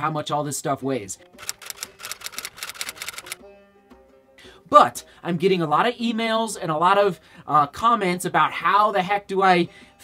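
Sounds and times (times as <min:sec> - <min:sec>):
typewriter keys clicking: 0:01.4 - 0:03.4.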